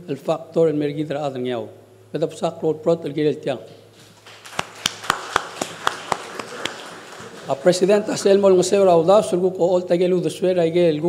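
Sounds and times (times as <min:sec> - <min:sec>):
sharp hand claps: 0:04.2 - 0:07.6
faint scattered applause: 0:04.2 - 0:08.0.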